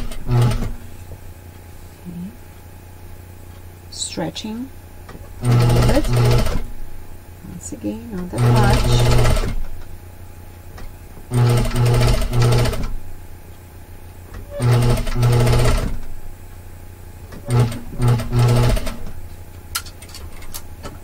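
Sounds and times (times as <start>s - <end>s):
sewing machine stitching: 0.0s - 0.8s, 5.4s - 6.7s, 8.2s - 9.6s, 11.3s - 13.0s, 14.5s - 16.0s, 17.4s - 19.1s.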